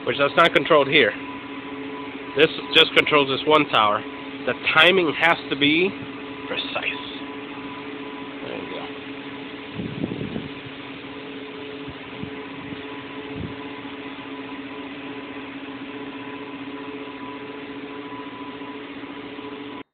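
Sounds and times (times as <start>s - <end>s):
constant tones: 0.0s - 14.6s
equipment fan hum: 0.0s - 19.9s.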